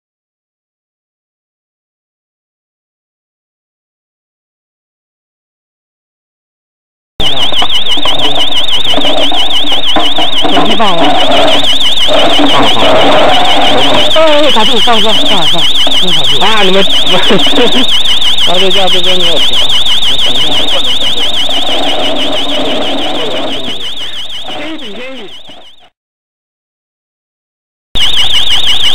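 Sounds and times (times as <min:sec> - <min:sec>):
electronic alarm buzzer warbling: 0:07.2 - 0:25.9, 0:28.0 - 0:28.9.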